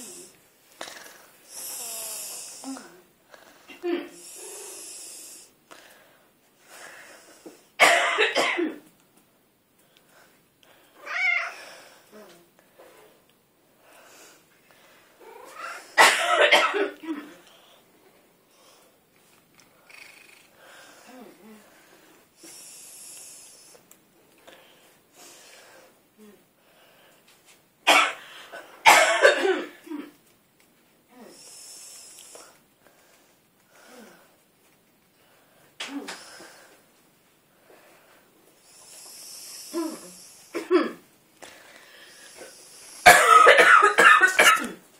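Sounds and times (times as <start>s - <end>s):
cat coughing harshly: 7.8s - 8.8s, 15.2s - 17.3s, 27.9s - 28.2s, 28.8s - 30.1s, 40.6s - 41.0s, 43.0s - 44.8s.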